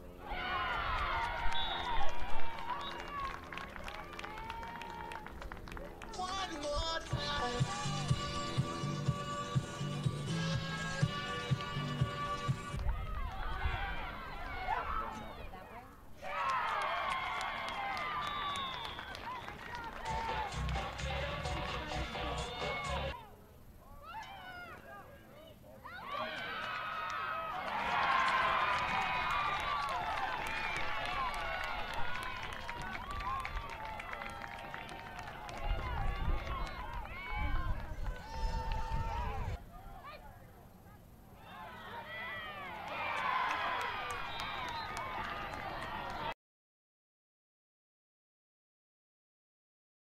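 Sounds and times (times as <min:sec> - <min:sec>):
crowd shouting and cheering: 0:00.0 - 0:05.4, 0:06.0 - 0:15.6, 0:16.2 - 0:23.2, 0:25.8 - 0:39.6, 0:41.4 - 0:46.4
many voices shouting: 0:19.7 - 0:23.2.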